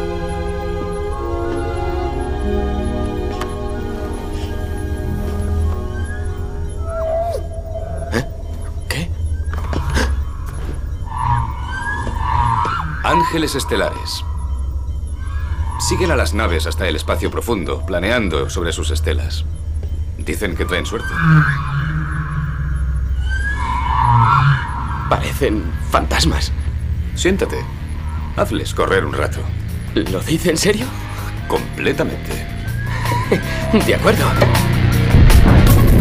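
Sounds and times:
low spaceship hum: 0.0s - 36.0s
creature calls: 5.5s - 14.4s
creature gliding cries: 5.9s - 8.9s.

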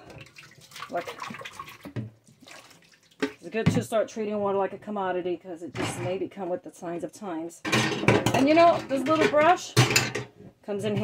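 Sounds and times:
water splashing in a sink: 0.0s - 3.6s.

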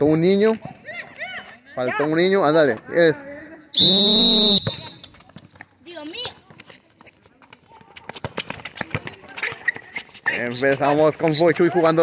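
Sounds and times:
scuffing running footsteps: 4.6s - 12.0s.

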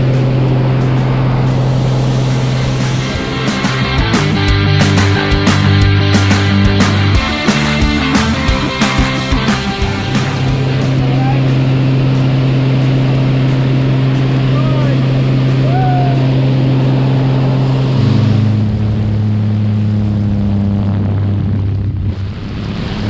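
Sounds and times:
propeller plane engine droning: 0.0s - 23.0s.

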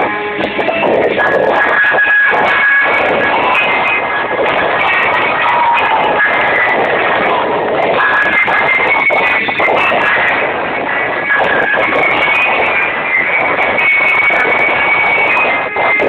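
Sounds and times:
loud dance music: 0.0s - 16.0s.

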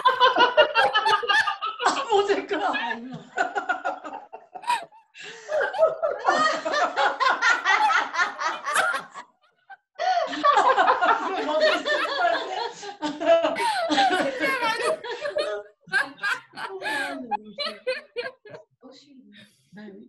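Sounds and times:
women laughing together: 0.0s - 18.6s.

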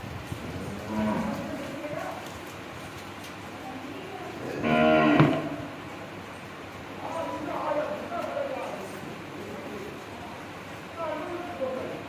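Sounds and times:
cow mooing: 0.6s - 1.6s, 4.5s - 5.6s.

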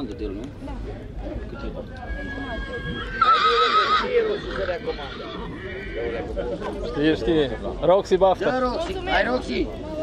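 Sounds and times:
horse whinnying: 2.1s - 6.2s.

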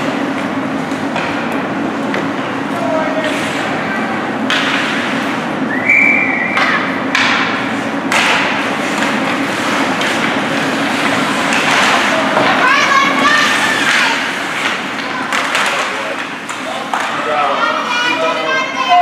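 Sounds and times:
spectators' voices: 2.6s - 19.0s
sticks and puck knocking on ice: 6.6s - 12.7s.

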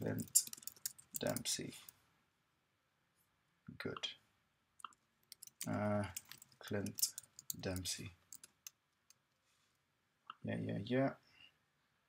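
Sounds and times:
computer keys typing: 0.0s - 1.6s, 4.8s - 8.8s.

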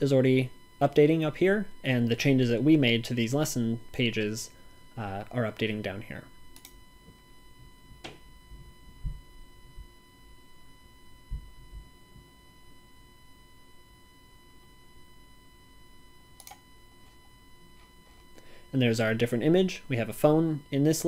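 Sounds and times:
faint steady tone: 0.0s - 21.0s
computer mouse clicks: 6.6s - 6.8s, 16.4s - 16.6s
soft low thumps: 7.1s - 10.0s, 11.2s - 12.3s.

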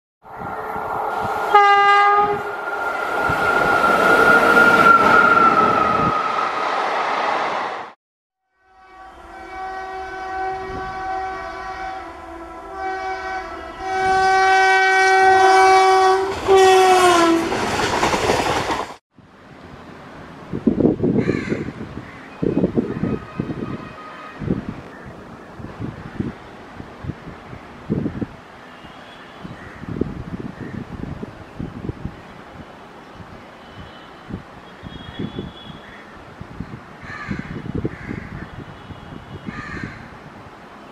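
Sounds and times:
locomotive air horn: 1.5s - 2.6s, 8.4s - 17.5s, 22.8s - 24.7s, 33.6s - 35.9s
train wheels clattering over rail joints: 17.4s - 19.0s.

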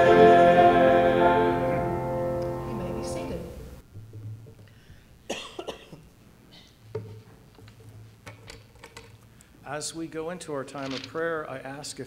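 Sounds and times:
person coughing: 5.3s - 6.8s.

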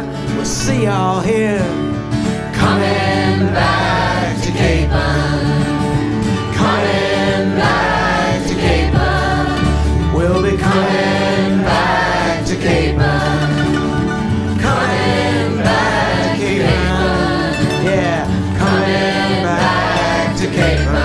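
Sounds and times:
bass line: 0.0s - 21.0s
choir singing: 2.5s - 21.0s.

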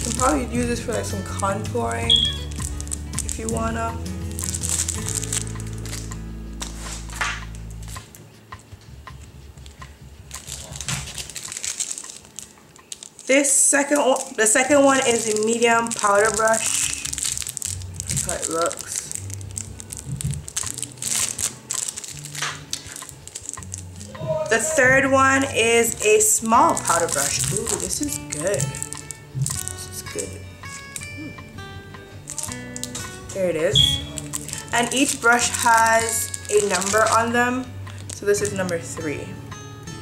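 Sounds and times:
plastic sleeve crinkling: 0.0s - 8.2s, 9.6s - 31.3s, 32.2s - 39.3s
background music with low notes: 0.0s - 40.0s.

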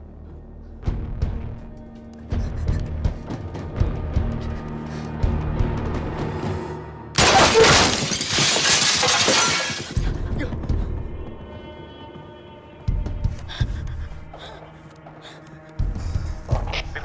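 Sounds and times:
tense dramatic score with drums: 0.0s - 7.2s, 9.9s - 17.0s
glass shattering crash: 7.2s - 10.0s.

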